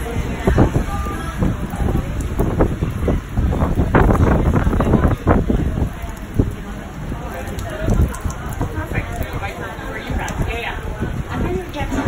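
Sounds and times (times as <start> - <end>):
rain spattering on window sill: 0.0 - 12.0
wind gusting on microphone: 0.0 - 12.0.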